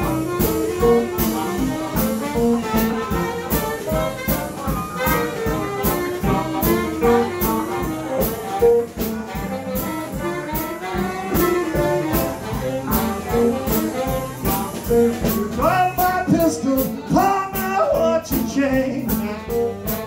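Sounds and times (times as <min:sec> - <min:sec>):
electric guitar: 0:00.0 - 0:17.7
drum kit beat: 0:00.0 - 0:20.0
harmonica: 0:00.0 - 0:20.0
saxophone: 0:00.0 - 0:20.0.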